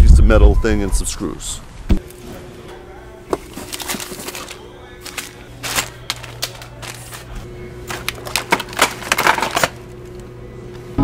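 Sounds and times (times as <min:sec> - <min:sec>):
plastic packaging crinkling: 0:03.3 - 0:10.3
small metal parts rattling: 0:07.9 - 0:09.8.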